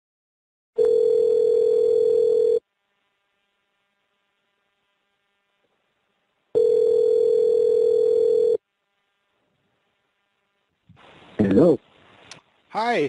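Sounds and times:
telephone ringback tone: 0.8 - 2.6, 6.6 - 8.6.

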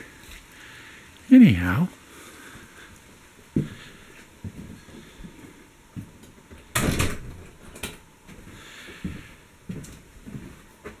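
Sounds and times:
door rushing shut: 6.8 - 7.4.

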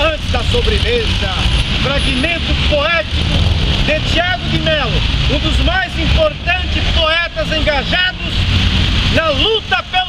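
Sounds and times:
man speaking: 0.0 - 8.5, 9.1 - 10.0.

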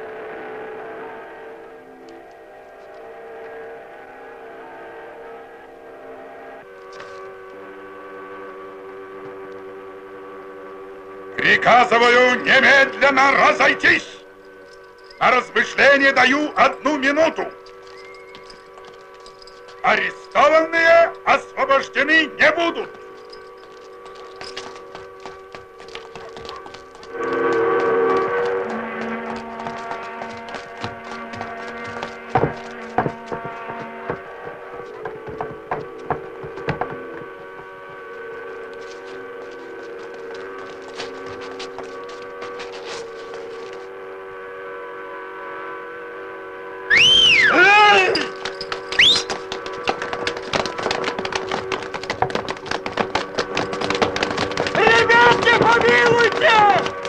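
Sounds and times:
held orchestral chord: 0.0 - 46.9, 47.6 - 57.0
crackle and clicks: 23.1 - 29.9.

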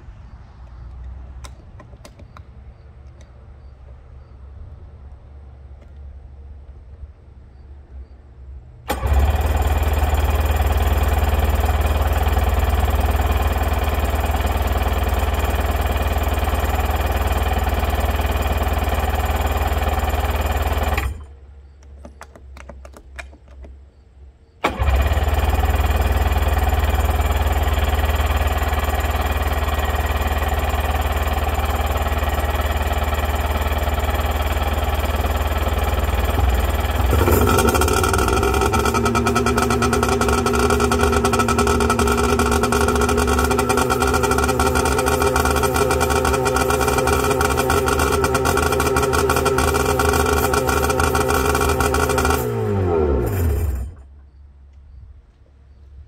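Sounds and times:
jet ski engine running: 24.7 - 53.8.

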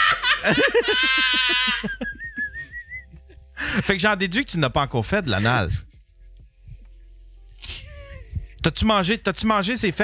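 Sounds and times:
people laughing hard: 0.0 - 4.0.

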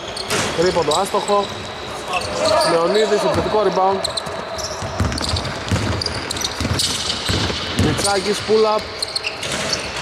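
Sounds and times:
sneakers squeaking on floor: 0.0 - 10.0
basketball bouncing on wooden court: 4.1 - 10.0.

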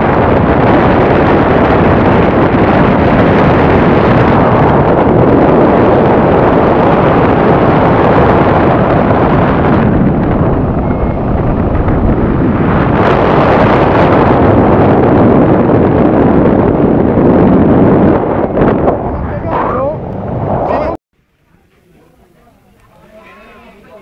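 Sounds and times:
wind buffeting a microphone: 0.0 - 21.0.

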